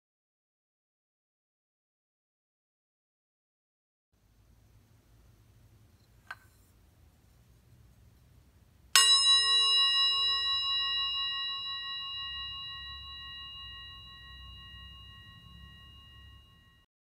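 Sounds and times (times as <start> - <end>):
singing bowl struck and ringing: 9.0 - 16.9.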